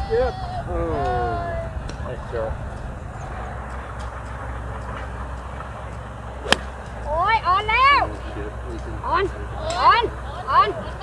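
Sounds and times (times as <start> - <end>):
low background rumble: 0.0 - 11.0
golf club striking ball: 3.6 - 7.9.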